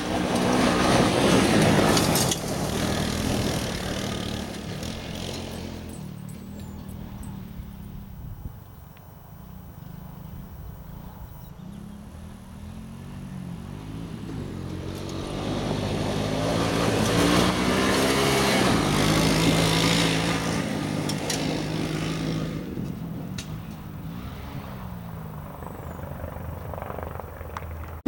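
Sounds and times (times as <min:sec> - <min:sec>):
vehicle engine passing on gravel: 0:00.0 - 0:28.0.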